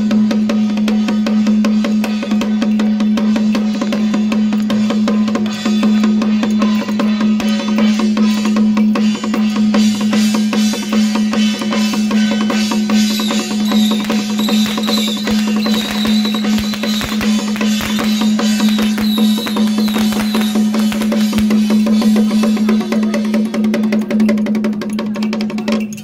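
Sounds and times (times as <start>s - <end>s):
percussion band drums gongs cymbals: 0.0s - 26.0s
high wavering tone: 13.0s - 21.6s.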